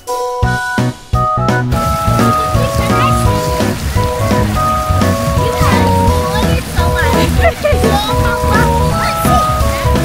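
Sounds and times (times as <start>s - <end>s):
background music with bass line: 0.0s - 10.0s
water splashing in shallow pool: 1.7s - 10.0s
water spraying from fountains: 1.7s - 10.0s.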